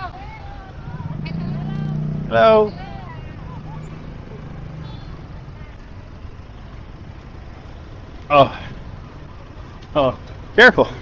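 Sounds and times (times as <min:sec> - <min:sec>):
low engine hum: 0:00.0 - 0:11.0
street traffic noise: 0:00.0 - 0:11.0.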